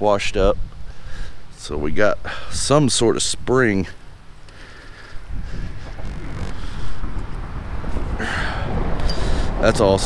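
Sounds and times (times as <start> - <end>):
wind buffeting microphone: 4.2 - 10.0.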